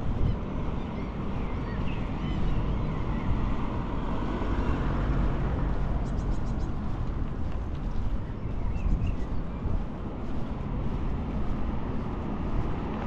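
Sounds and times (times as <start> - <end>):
low rumble of road traffic: 0.0 - 13.0.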